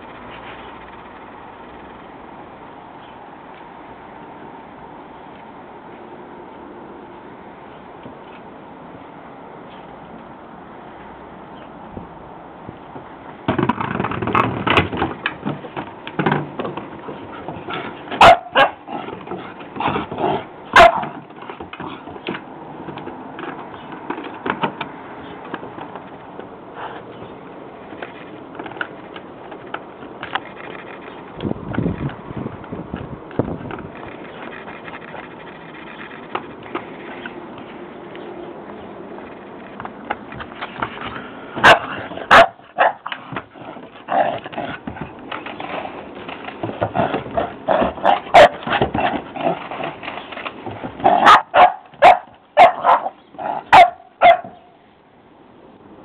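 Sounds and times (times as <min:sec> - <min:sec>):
dog paws on wooden decking: 0:12.6 - 0:54.7
dog barking: 0:18.2 - 0:18.8, 0:20.7 - 0:21.1, 0:41.6 - 0:43.1, 0:47.7 - 0:48.6, 0:51.1 - 0:54.7.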